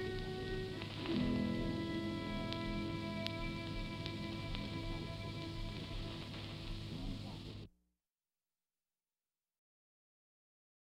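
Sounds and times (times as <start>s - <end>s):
violin and piano chord: 0.0s - 7.0s
recording hiss: 0.0s - 7.7s.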